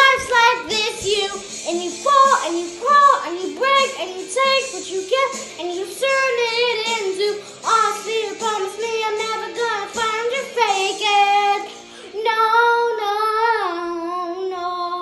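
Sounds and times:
girl singing: 0:00.0 - 0:15.0.

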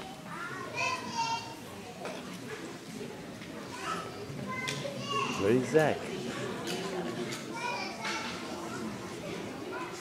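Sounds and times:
children and adults chattering: 0:00.0 - 0:10.0.

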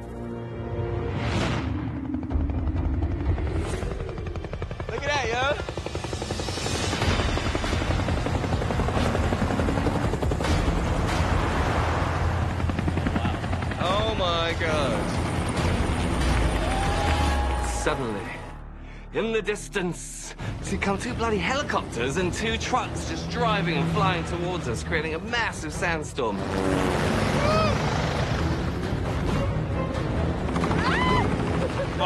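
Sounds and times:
helicopter rotors chopping: 0:01.3 - 0:18.4, 0:20.5 - 0:32.0
people shouting: 0:16.5 - 0:18.1, 0:27.4 - 0:27.9, 0:30.7 - 0:31.3.

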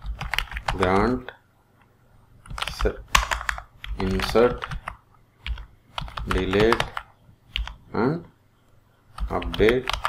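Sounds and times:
computer keyboard typing: 0:00.0 - 0:01.1, 0:02.4 - 0:07.8, 0:09.1 - 0:10.0.

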